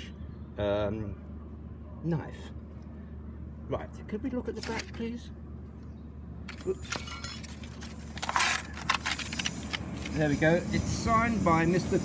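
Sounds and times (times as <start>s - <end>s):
paper rustling: 6.8s - 10.2s
paper crackling: 7.4s - 10.2s.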